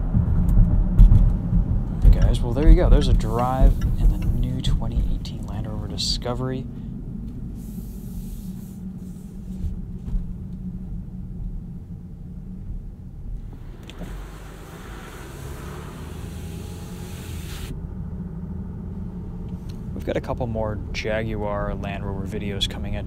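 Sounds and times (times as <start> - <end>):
diesel engine rumble: 0.0 - 23.0
road noise: 0.0 - 23.0
hiss: 7.6 - 9.4, 13.4 - 17.7.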